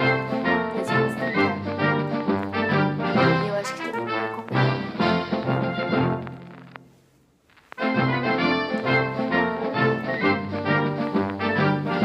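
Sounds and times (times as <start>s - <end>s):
instrumental background music: 0.0s - 7.0s, 7.7s - 12.0s.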